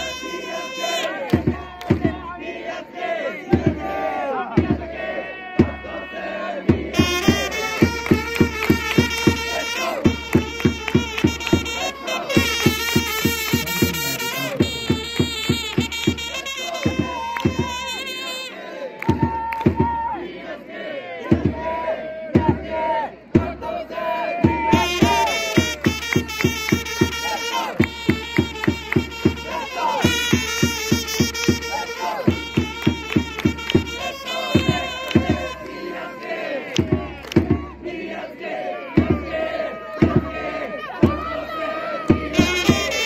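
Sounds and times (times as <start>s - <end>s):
trumpets holding notes: 0.0s - 1.7s, 6.8s - 19.0s, 24.7s - 36.8s, 39.3s - 43.0s
crowd chanting and shouting: 0.0s - 43.0s
big drum beats: 1.2s - 2.5s, 3.4s - 18.2s, 19.0s - 20.2s, 21.2s - 36.0s, 36.7s - 37.9s, 38.9s - 43.0s.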